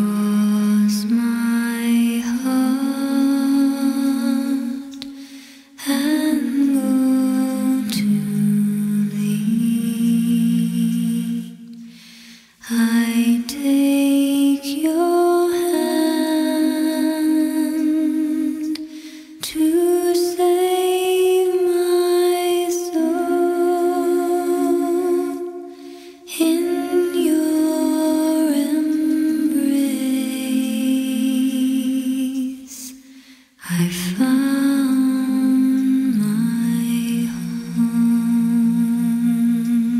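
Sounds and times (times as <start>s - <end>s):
woman singing long notes: 19.5s - 32.8s.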